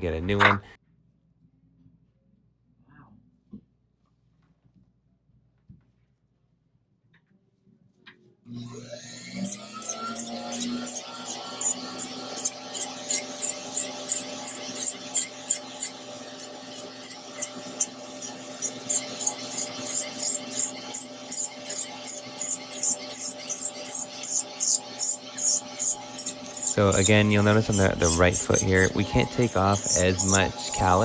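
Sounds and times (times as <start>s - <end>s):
electric drill whining: 8.5s - 31.0s
sanding disc rasping on skin: 9.4s - 31.0s.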